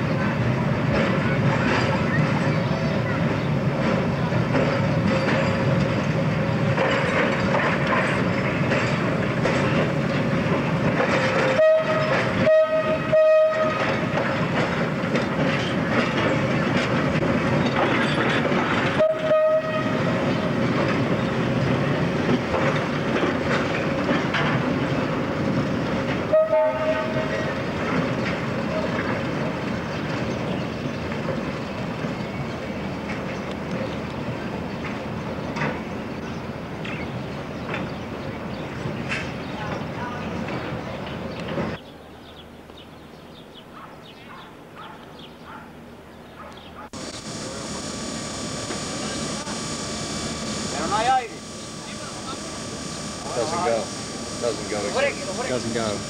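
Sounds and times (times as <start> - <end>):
electric train rumble and hum: 0.0 - 37.8, 47.0 - 56.0
train horn toots: 11.4 - 14.0, 18.9 - 20.2, 26.3 - 27.4, 47.0 - 56.0.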